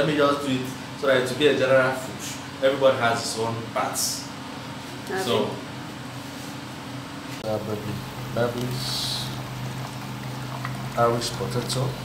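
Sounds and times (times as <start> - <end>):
steady low hum: 0.0 - 12.0
man saying uh: 5.1 - 5.6.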